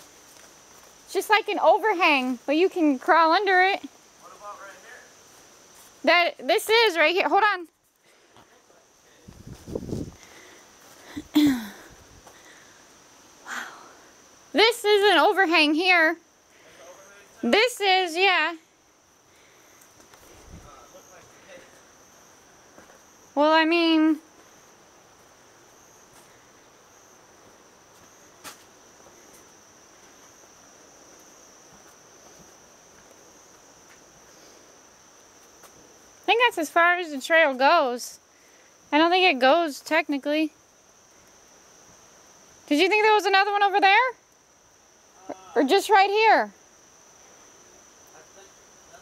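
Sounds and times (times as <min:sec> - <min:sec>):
insects trilling: 0:00.0 - 0:49.0
person clearing throat: 0:11.3 - 0:11.8.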